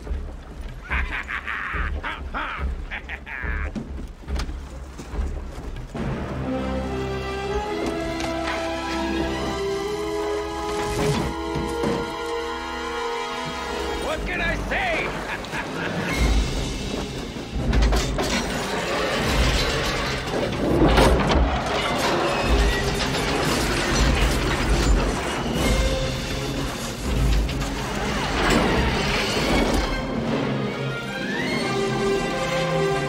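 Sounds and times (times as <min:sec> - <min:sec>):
heavy mechanical thuds: 0:00.0 - 0:06.5
rigging clanks and whirs: 0:00.0 - 0:14.2, 0:15.1 - 0:33.0
film score music: 0:00.0 - 0:33.0.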